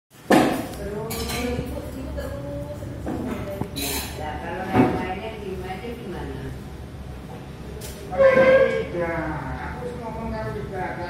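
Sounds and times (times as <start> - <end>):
dishes and tableware clattering: 0.3 - 2.1, 3.0 - 5.1.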